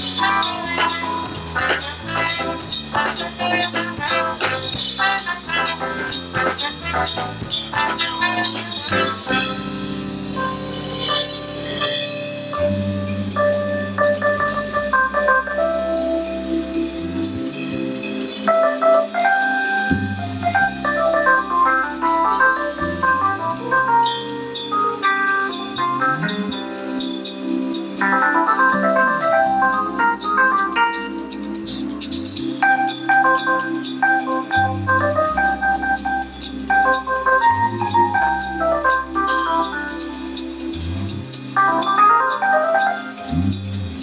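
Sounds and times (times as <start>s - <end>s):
electric bass walking: 0.0s - 18.0s
drum kit with cymbals: 0.0s - 44.0s
organ-toned keyboard chords: 0.0s - 44.0s.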